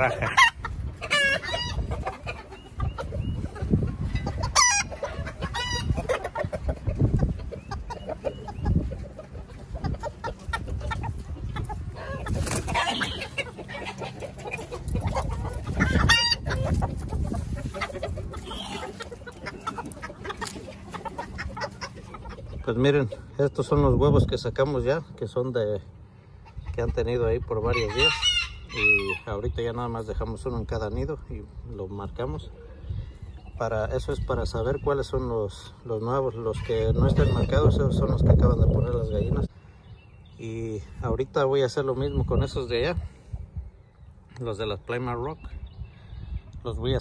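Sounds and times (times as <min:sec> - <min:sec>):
roosters crowing: 0:00.0 - 0:22.5, 0:27.6 - 0:29.4
chickens clucking: 0:00.0 - 0:47.0.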